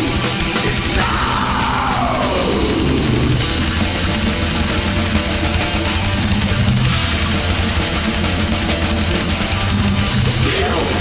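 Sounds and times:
heavy metal music: 0:00.0 - 0:11.0.

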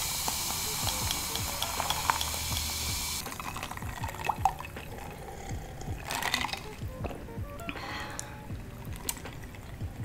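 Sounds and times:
liquid pouring into a glass: 0:00.5 - 0:06.8.

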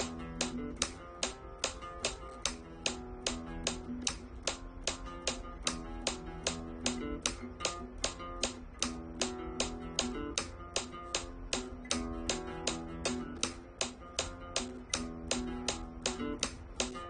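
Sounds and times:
flamenco guitar bass notes: 0:00.0 - 0:17.0
metronome clicking: 0:00.0 - 0:17.0.

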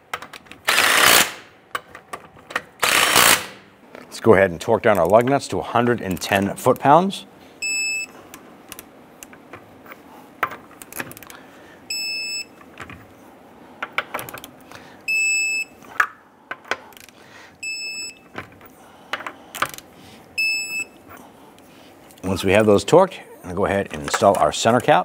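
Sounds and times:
torque wrench beeping: 0:07.6 - 0:08.1, 0:11.9 - 0:12.6, 0:15.1 - 0:15.7, 0:20.4 - 0:21.0.

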